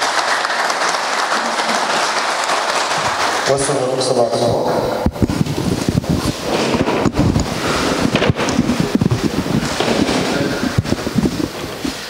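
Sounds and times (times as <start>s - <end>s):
people sitting down on chairs: 0.0s - 12.0s.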